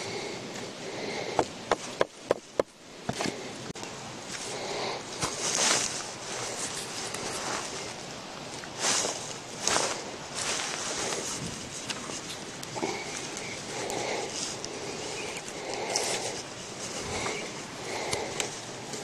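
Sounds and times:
footsteps on dry leaves: 4.2 - 19.0
wooden pole scuffs: 5.1 - 8.0, 8.6 - 19.0.

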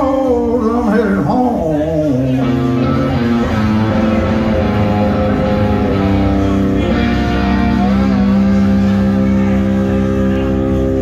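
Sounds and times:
guitar and drums playing: 0.0 - 11.0.

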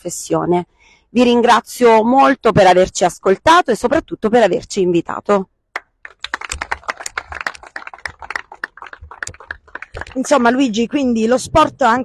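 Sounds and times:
people applauding: 5.8 - 10.7.

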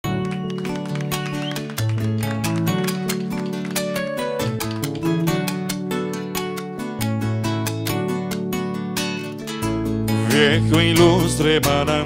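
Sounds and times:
synthesizer keyboard chords and bass: 2.0 - 11.8.

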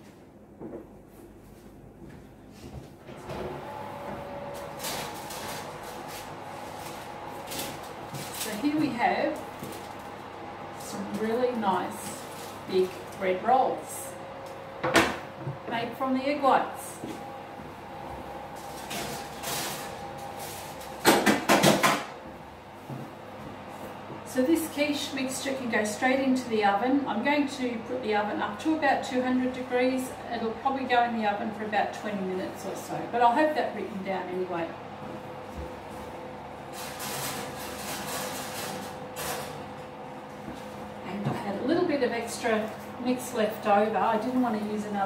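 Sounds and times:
steady low hum: 0.0 - 45.0
metal trays scraping oven racks: 36.7 - 39.6.

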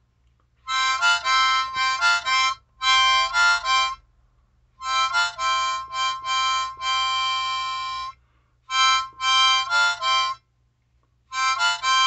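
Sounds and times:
harmonica playing: 0.6 - 4.1, 4.8 - 10.5, 11.3 - 12.0.

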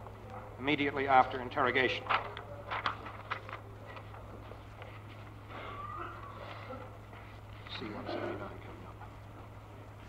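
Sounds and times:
recording hum and hiss: 0.0 - 10.0.

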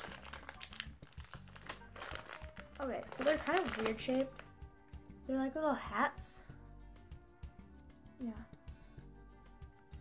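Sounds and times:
plastic candy bag crinkling: 0.0 - 4.5.

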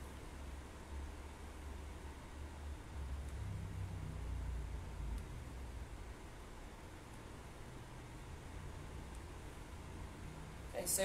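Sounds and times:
low uneven rumble: 2.3 - 11.0.

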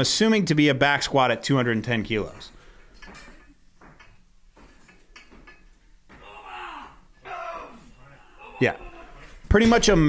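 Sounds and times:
faint knocks and clatter: 2.2 - 6.2.

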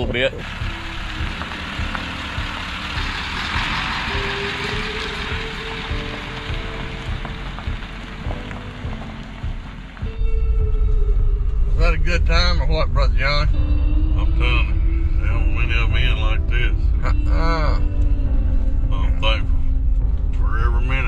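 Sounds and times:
pickup truck driving on gravel: 0.0 - 10.2
background music with held notes: 0.0 - 21.0
deep truck rumble from inside cab: 0.0 - 21.0.

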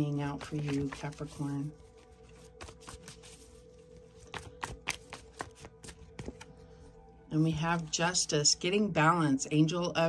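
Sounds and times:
cards being shuffled: 0.0 - 6.5
faint background music: 0.0 - 10.0.

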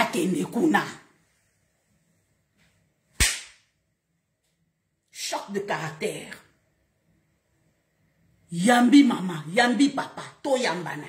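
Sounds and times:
loud sharp crack: 3.2 - 3.7.

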